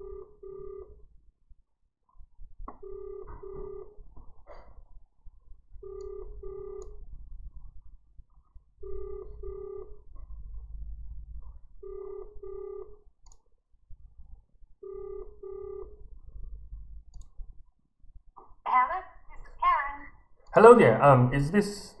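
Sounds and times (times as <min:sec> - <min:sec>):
telephone ringback tone: 0:00.0 - 0:01.0, 0:02.8 - 0:04.0, 0:05.8 - 0:07.0, 0:08.8 - 0:10.1, 0:11.8 - 0:13.0, 0:14.8 - 0:16.0.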